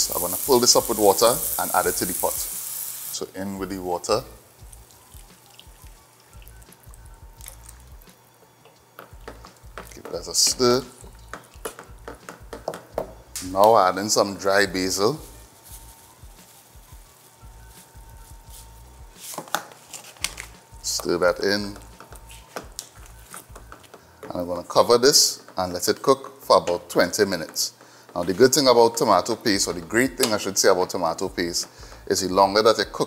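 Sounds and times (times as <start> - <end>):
quiet background music: 0.0 - 33.0
water pouring and dripping: 4.6 - 11.9
spoon stirring thick sauce: 8.7 - 12.8
spoon knocking and scraping pan: 9.0 - 13.2.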